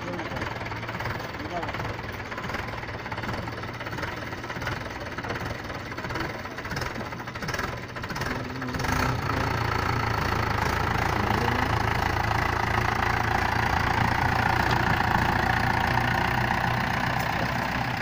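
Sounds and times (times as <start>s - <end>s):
tractor diesel engine revving: 0.0s - 18.0s.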